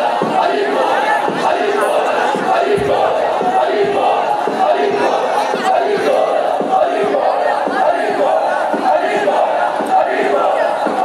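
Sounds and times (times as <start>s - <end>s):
large crowd chanting and shouting: 0.0s - 11.0s.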